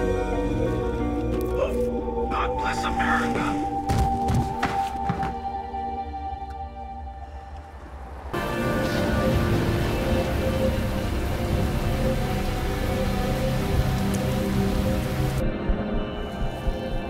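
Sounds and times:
background music: 0:00.0 - 0:17.0
heavy rain pouring: 0:08.1 - 0:15.4.

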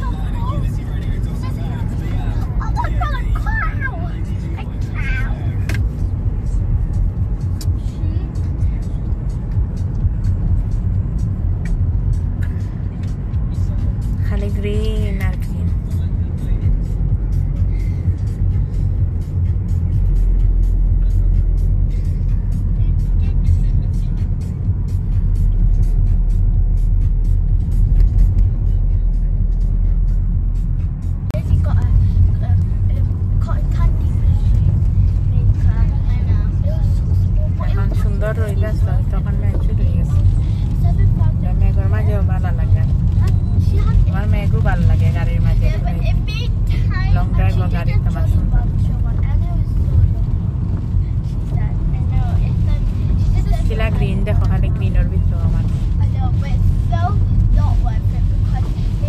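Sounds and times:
car cabin road and engine rumble: 0:00.0 - 0:59.0.

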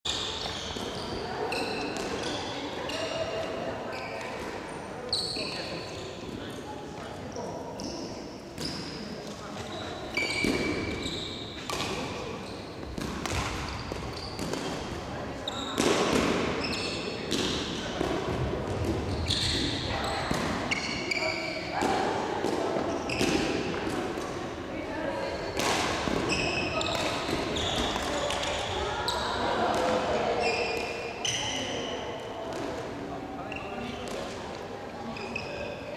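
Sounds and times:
shoes squeaking on floor: 0:00.0 - 0:04.4, 0:05.0 - 0:06.5, 0:07.2 - 0:16.0, 0:16.6 - 0:17.8, 0:18.9 - 0:21.8, 0:22.8 - 0:23.6, 0:25.2 - 0:29.5, 0:35.0 - 0:35.8
rackets striking shuttlecock: 0:10.2 - 0:12.3, 0:12.9 - 0:15.0, 0:25.6 - 0:28.8, 0:29.7 - 0:30.2.

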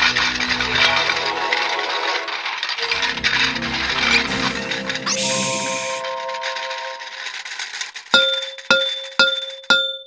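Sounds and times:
held musical chord: 0:00.4 - 0:07.4
cartoon bell-like clangs: 0:04.0 - 0:07.4.

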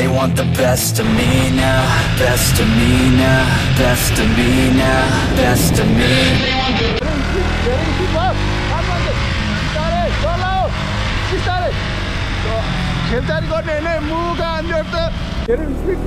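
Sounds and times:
motorcycle engine riding: 0:00.7 - 0:16.0
wind and road noise: 0:01.0 - 0:16.0.

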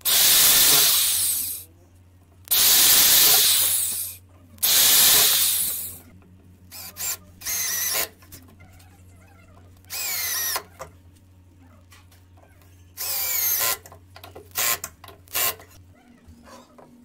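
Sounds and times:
cordless drill boring: 0:00.0 - 0:01.6, 0:02.5 - 0:06.0, 0:06.7 - 0:08.2, 0:09.9 - 0:10.7, 0:13.0 - 0:13.9, 0:14.5 - 0:15.7.

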